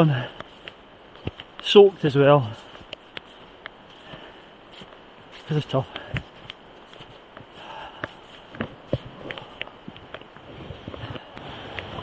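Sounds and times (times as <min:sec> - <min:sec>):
footsteps in deep wet snow: 0:00.0 - 0:11.7
steady hiss: 0:00.0 - 0:12.0
trekking poles clicking: 0:00.0 - 0:12.0.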